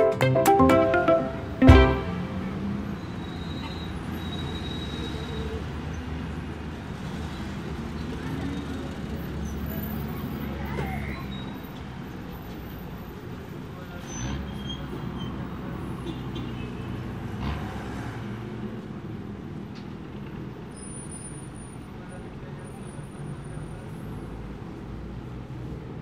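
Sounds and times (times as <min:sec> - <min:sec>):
rumble of passing cars: 0:02.2 - 0:26.0.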